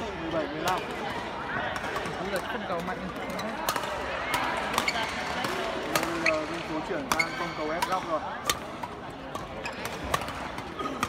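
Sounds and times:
voices echoing in a hall: 0.0 - 11.0
racket striking shuttlecock: 3.6 - 10.8.

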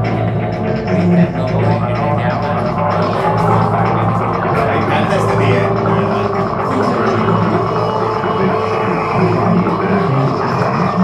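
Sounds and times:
electronic music drone: 0.0 - 11.0.

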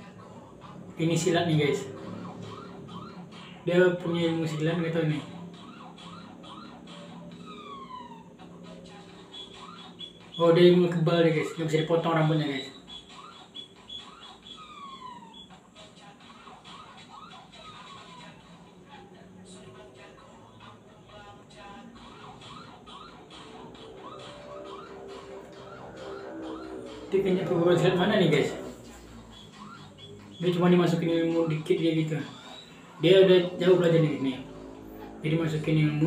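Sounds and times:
faint musical backing: 0.0 - 36.0
faint siren-like warble: 0.0 - 36.0
falling whistle-like tone: 9.2 - 15.6, 22.4 - 34.6.

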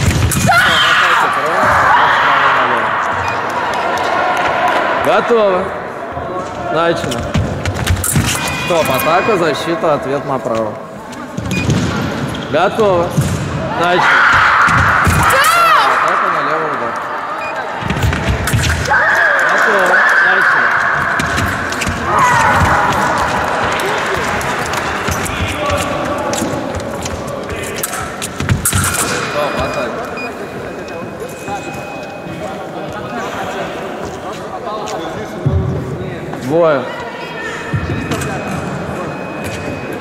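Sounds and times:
fencers shouting: 0.3 - 5.0, 13.7 - 17.7, 18.8 - 26.4.

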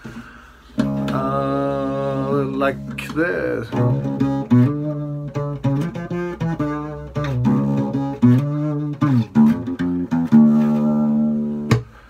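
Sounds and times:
acoustic guitar riff: 0.7 - 12.0.

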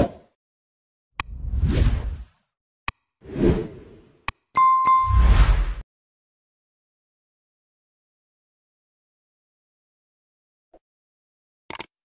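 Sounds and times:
whooshes with deep rumble: 1.3 - 2.3
bright ringing ding: 4.6 - 5.2.

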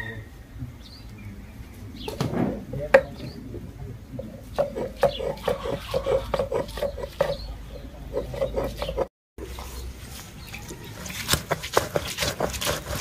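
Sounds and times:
stone roller grinding on stone: 4.5 - 7.5, 8.1 - 9.1, 10.5 - 13.0.

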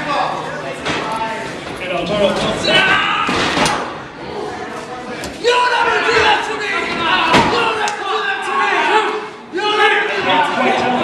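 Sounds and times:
crowd shouting in large hall: 2.4 - 11.0.

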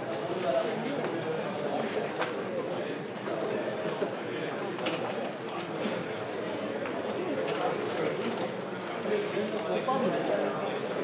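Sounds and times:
murmur of overlapping chatter: 0.0 - 11.0.

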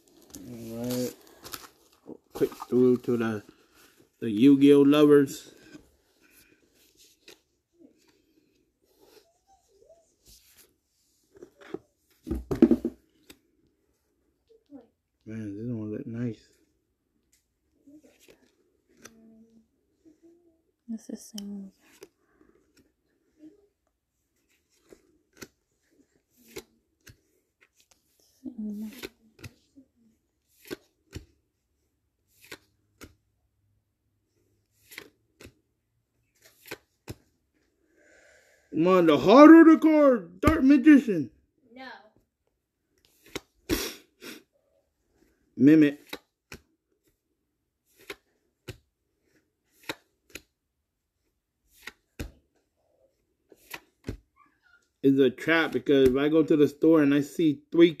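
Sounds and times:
trading cards rustling: 0.0 - 9.2, 16.4 - 19.7, 21.4 - 33.6, 34.2 - 37.6, 43.0 - 43.6, 45.0 - 50.6, 51.2 - 54.3
cards swishing off a stack: 30.5 - 31.3, 32.3 - 33.2, 36.4 - 37.2, 47.9 - 50.5, 51.7 - 52.4, 53.5 - 54.2.

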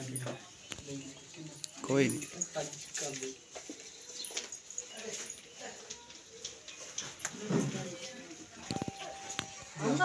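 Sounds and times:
quiet voices of people: 0.0 - 10.0.

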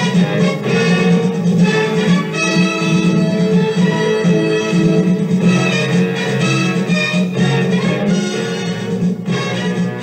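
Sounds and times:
string instrument music: 0.0 - 10.0.

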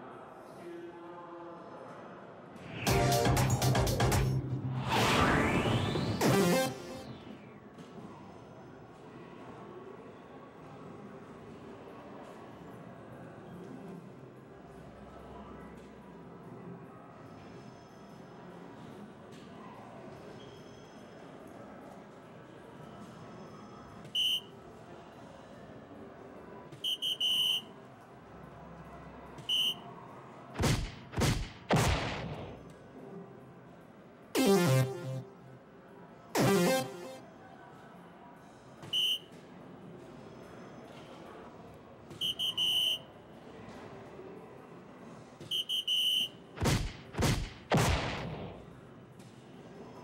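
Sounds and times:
dart machine swooshes: 2.6 - 7.5
dart machine beeping chime: 34.4 - 35.4, 36.4 - 37.2.

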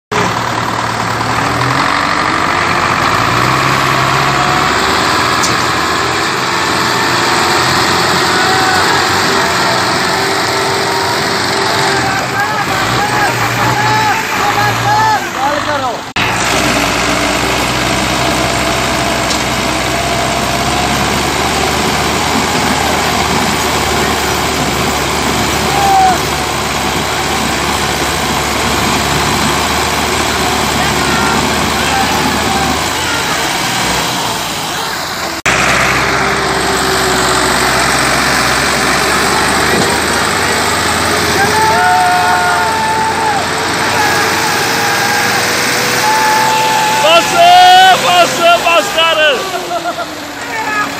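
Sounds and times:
tractor diesel engines labouring: 0.1 - 50.9
people shouting: 7.5 - 16.0, 25.4 - 26.5, 30.6 - 34.8, 40.9 - 50.9.

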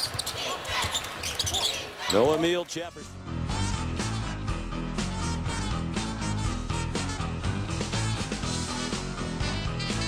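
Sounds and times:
arena crowd noise: 0.0 - 4.2.

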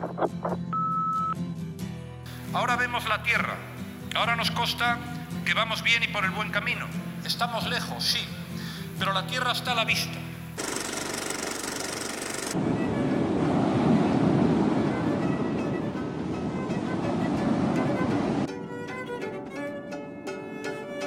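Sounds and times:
bowed violin: 14.8 - 21.0
plucked strings: 17.3 - 21.0.

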